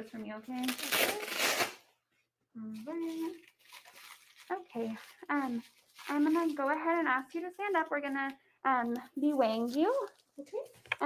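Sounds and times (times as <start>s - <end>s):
velcro tearing: 0.6s - 1.9s, 3.0s - 6.6s.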